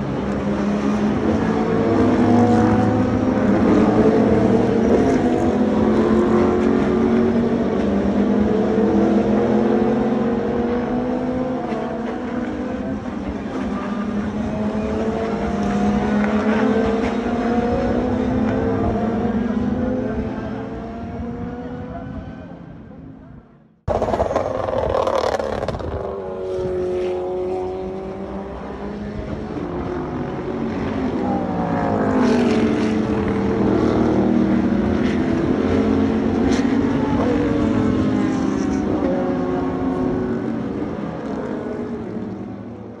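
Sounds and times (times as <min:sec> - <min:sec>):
race car engines: 0:00.0 - 0:43.0.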